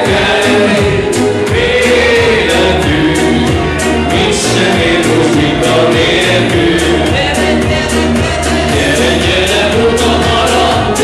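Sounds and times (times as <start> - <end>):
live dance band playing: 0.0 - 11.0
person singing: 0.0 - 11.0.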